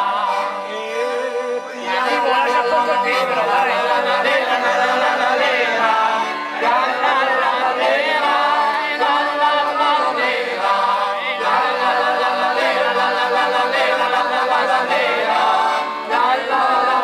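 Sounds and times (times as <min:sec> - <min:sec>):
men singing in chorus: 0:00.0 - 0:17.0.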